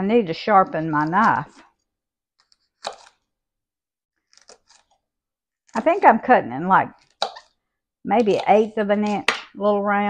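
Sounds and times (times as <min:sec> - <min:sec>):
knife cutting on cutting board: 0:02.4 - 0:03.3, 0:04.3 - 0:05.0, 0:07.0 - 0:07.6, 0:08.2 - 0:09.4.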